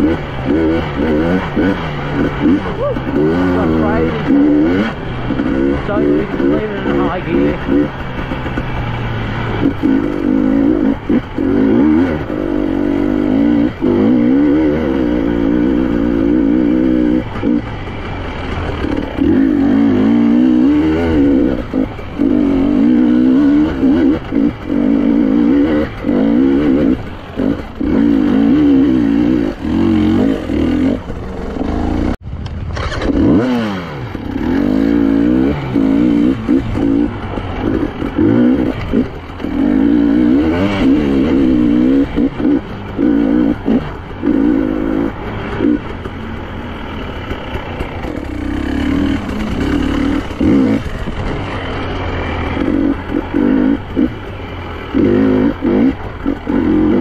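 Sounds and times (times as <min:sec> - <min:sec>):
two-stroke motorcycle engine revving: 0:00.0 - 0:57.0.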